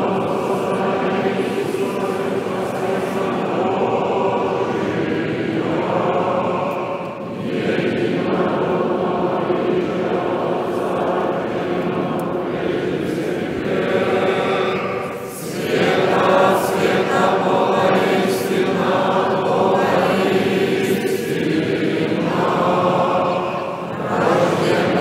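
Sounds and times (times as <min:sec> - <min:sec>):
congregation singing a chant: 0:00.0 - 0:25.0.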